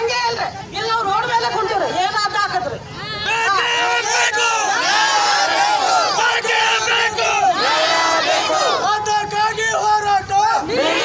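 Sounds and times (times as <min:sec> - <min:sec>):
crowd of men shouting slogans: 0:03.0 - 0:11.0.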